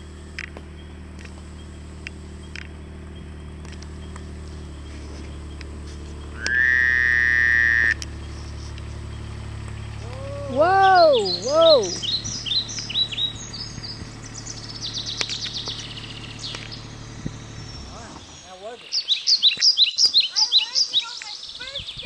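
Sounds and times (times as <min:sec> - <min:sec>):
birds chirping: 0:00.0 - 0:22.0
diesel engine idling: 0:00.0 - 0:22.0
loud steady beep: 0:06.4 - 0:08.0
person calling out: 0:10.0 - 0:12.0.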